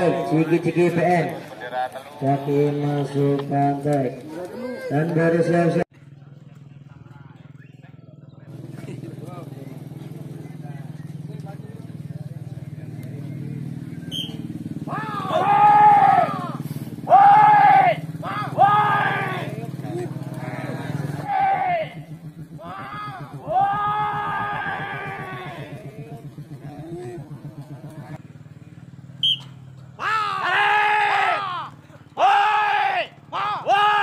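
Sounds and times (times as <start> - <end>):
men shouting: 0.0 - 1.3, 14.8 - 28.2, 29.9 - 34.0.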